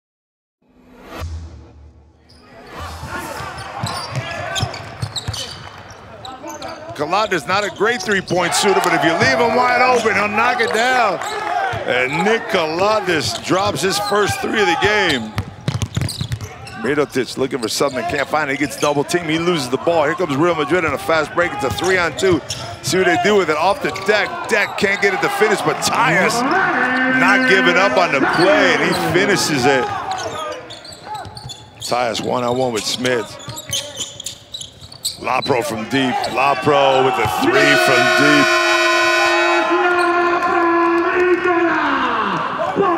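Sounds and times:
basketball bouncing on hardwood: 15.4 - 16.5
short calls or squeaks: 32.8 - 35.3.

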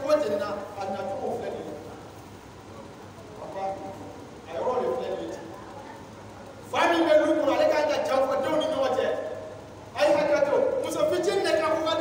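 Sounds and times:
low steady background hum: 0.0 - 12.0.

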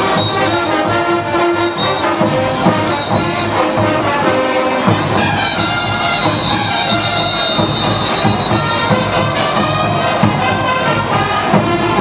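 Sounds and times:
brass band playing: 0.0 - 12.0.

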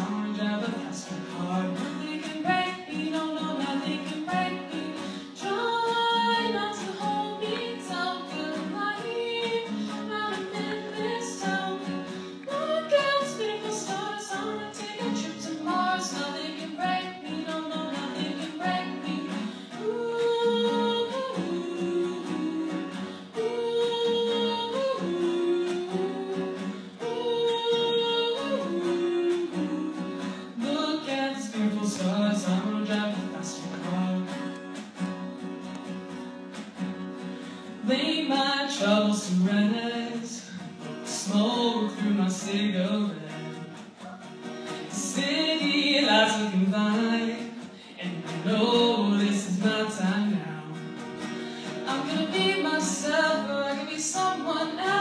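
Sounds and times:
woman singing pop song: 0.0 - 34.9, 37.2 - 43.8, 44.7 - 55.0
guitar accompaniment: 0.0 - 55.0.

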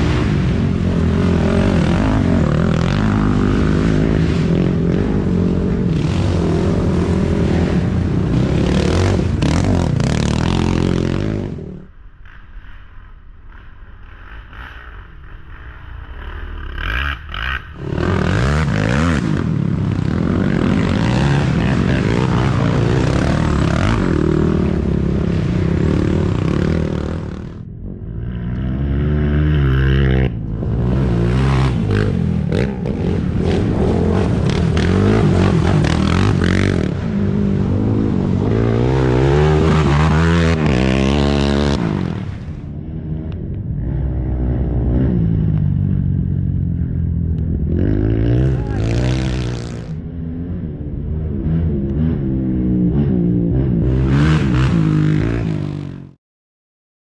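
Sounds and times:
quad engines revving: 0.0 - 11.9, 13.5 - 50.4.

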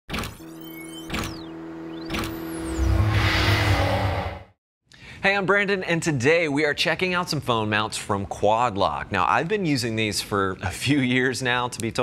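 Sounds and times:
held electronic tone: 0.2 - 4.0
falling and rising pitch sweeps: 0.4 - 4.6.

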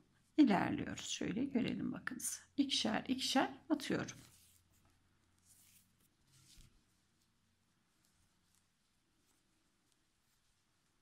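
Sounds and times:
soft rustling of yarn and crochet hook: 3.1 - 11.0.

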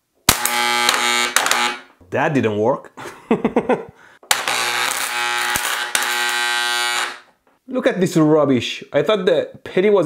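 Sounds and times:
loud electrical buzz: 0.3 - 2.0, 4.3 - 7.3
person laughing: 3.0 - 4.0.

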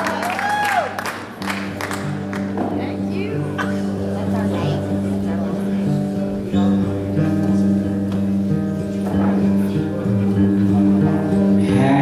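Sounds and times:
acoustic guitar chords: 1.1 - 12.0.

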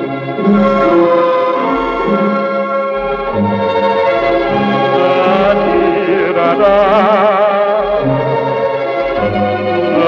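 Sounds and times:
light orchestral music: 0.0 - 10.0.

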